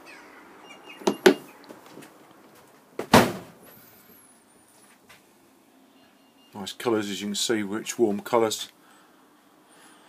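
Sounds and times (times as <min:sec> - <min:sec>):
heavy door thud: 0:03.0 - 0:03.6.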